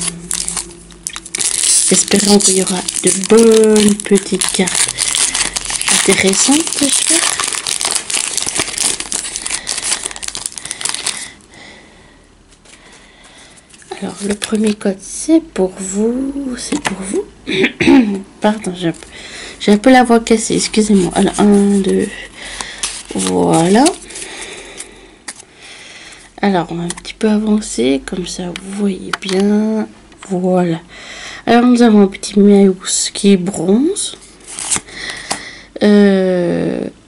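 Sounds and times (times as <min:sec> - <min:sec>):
foil wrapper crinkling: 0:00.0 - 0:11.4, 0:13.8 - 0:14.8, 0:20.6 - 0:25.4
trading cards rustling: 0:00.0 - 0:11.4, 0:13.6 - 0:14.8, 0:20.4 - 0:25.4, 0:34.4 - 0:35.4.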